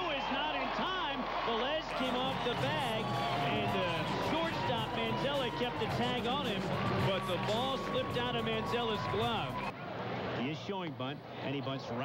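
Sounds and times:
man commentating: 0:00.0 - 0:09.7
background music: 0:02.0 - 0:09.7.

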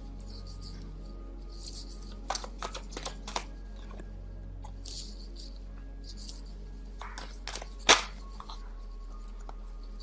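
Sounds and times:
faint background music: 0:00.0 - 0:10.0
low steady hum: 0:00.0 - 0:10.0
cards rustling and snapping: 0:02.2 - 0:04.0, 0:07.0 - 0:08.6.

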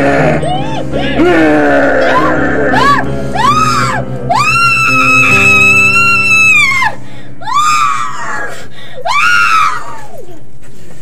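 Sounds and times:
droning music: 0:00.0 - 0:08.3
woman screaming: 0:00.4 - 0:10.2.

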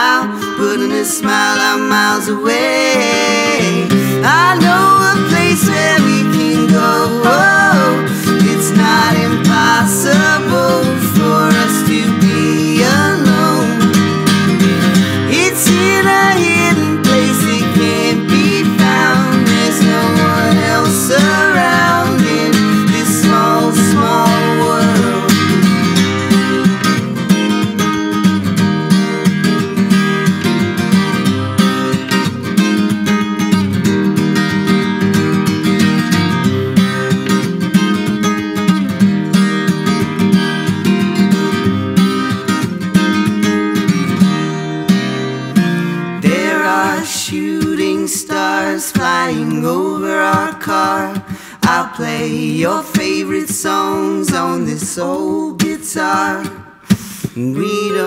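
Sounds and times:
acoustic guitar strumming: 0:00.0 - 0:58.0.

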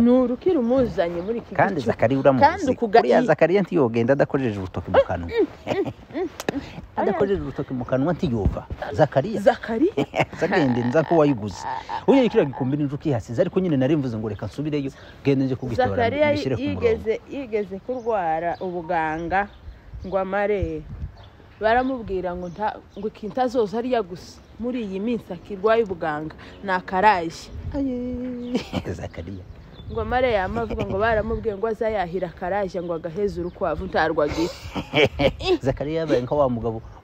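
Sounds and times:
person exclaiming: 0:15.9 - 0:17.1
person humming: 0:15.9 - 0:17.1.

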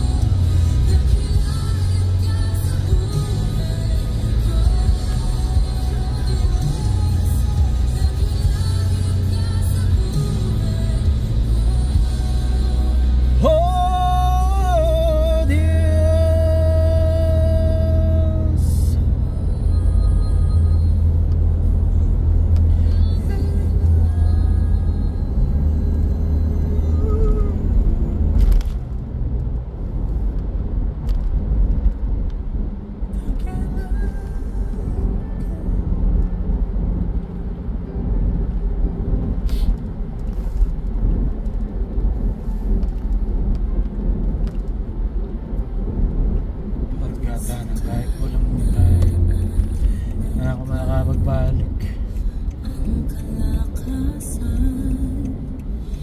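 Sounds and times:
car cabin road and engine rumble: 0:00.0 - 0:56.0.

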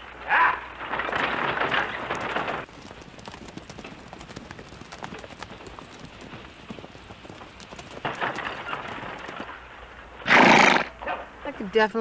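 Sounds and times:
horse hooves clip-clopping: 0:00.5 - 0:11.7.

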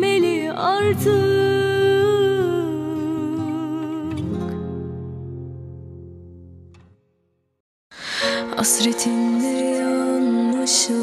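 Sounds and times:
woman singing long note: 0:08.5 - 0:11.0.

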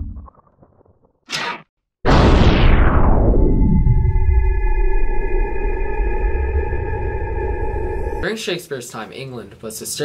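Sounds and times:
low rumble: 0:02.1 - 0:08.2
ringing tones drone: 0:03.5 - 0:08.2.

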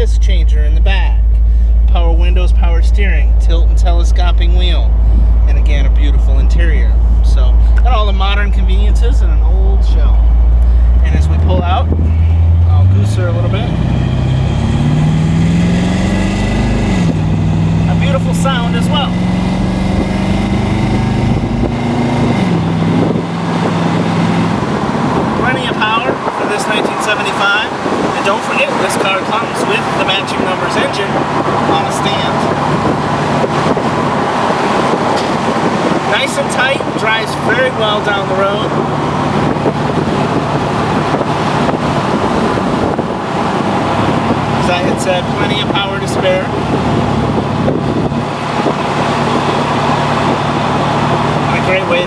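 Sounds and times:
car engine accelerating: 0:00.0 - 0:52.0
wind and road noise: 0:00.0 - 0:52.0
wind buffeting microphone: 0:04.6 - 0:52.0.

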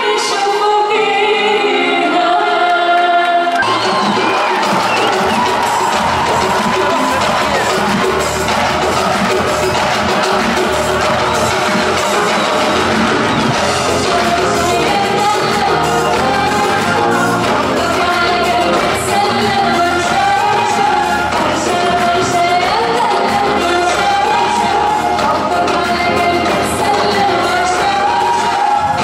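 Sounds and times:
crowd cheering: 0:02.4 - 0:29.0
band playing: 0:03.5 - 0:29.0
hand drums: 0:03.6 - 0:29.0.

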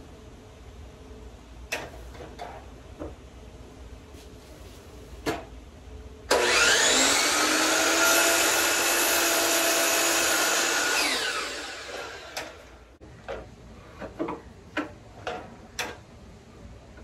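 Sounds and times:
miter saw motor whine: 0:06.3 - 0:12.7.

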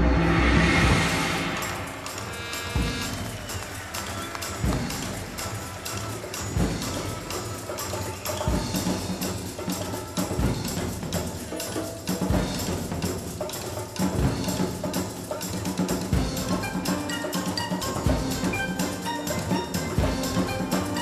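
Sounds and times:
orchestral music: 0:00.0 - 0:21.0.

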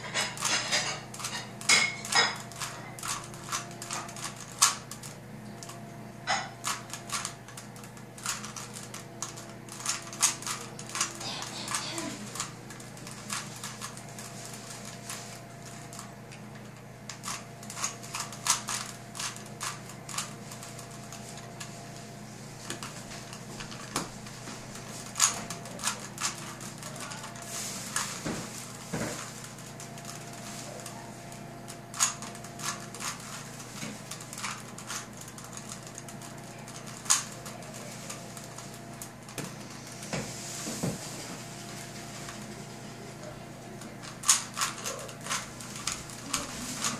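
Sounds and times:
steady low hum: 0:00.0 - 0:46.9.

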